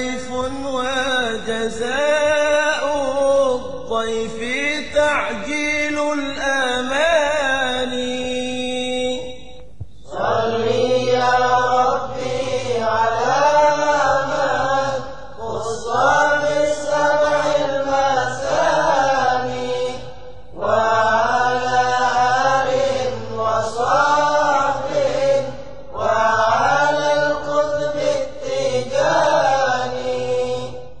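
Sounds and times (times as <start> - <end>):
man chanting devotional poem: 0.0 - 31.0.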